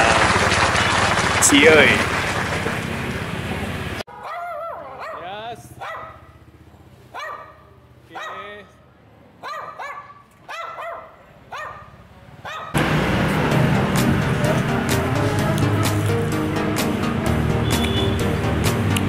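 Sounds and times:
loud music: 0.0s - 2.8s, 12.8s - 19.0s
small dog barking: 4.1s - 6.4s, 7.1s - 8.6s, 9.4s - 12.8s.

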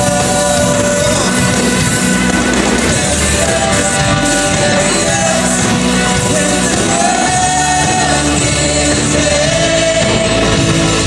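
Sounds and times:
drums: 0.0s - 11.0s
electric guitars: 0.0s - 11.0s
man singing lead vocal: 0.0s - 11.0s
woman singing backup: 3.2s - 10.9s.

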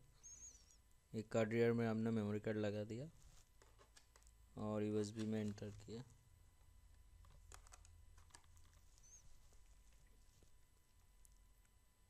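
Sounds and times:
keyboard keys clicking: 7.2s - 8.8s.

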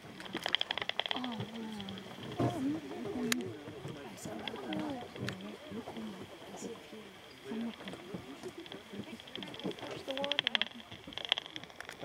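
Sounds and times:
bat detector clicks: 0.2s - 2.4s, 7.5s - 12.0s
people talking indistinctly: 1.1s - 11.6s.

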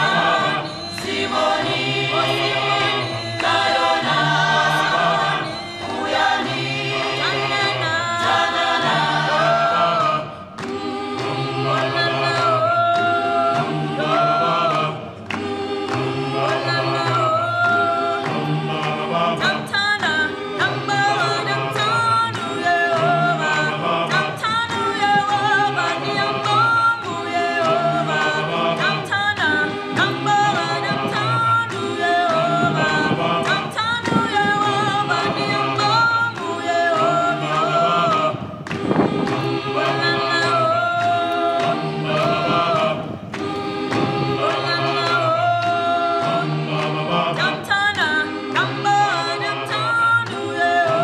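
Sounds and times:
a cappella choir singing: 0.0s - 51.0s.

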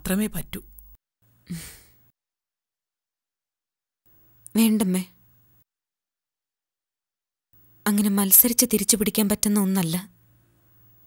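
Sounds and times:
woman sighing: 1.5s - 2.0s.

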